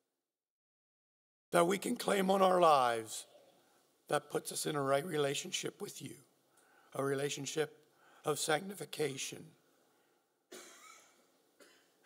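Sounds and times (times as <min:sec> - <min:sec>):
soft cough: 0:10.5 - 0:12.0.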